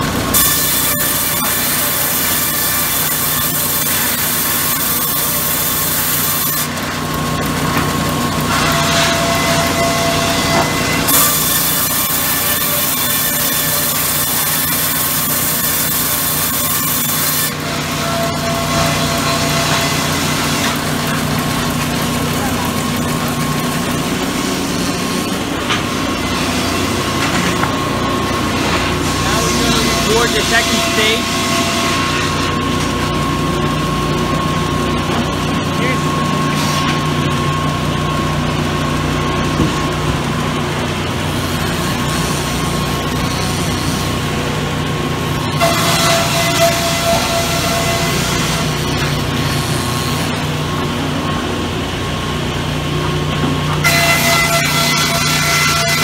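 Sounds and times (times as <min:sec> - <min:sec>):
saw cutting through log: 0:00.0 - 0:51.8, 0:53.6 - 0:56.0
band saw motor hum: 0:00.0 - 0:56.0.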